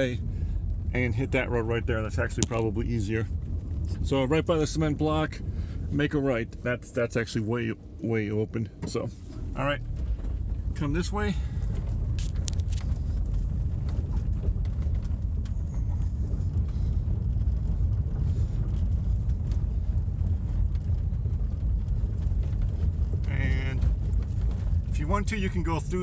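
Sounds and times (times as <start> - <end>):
low rumble of engine and tyres: 0.0 - 26.0
clicks and knocks from bumps: 9.8 - 25.4.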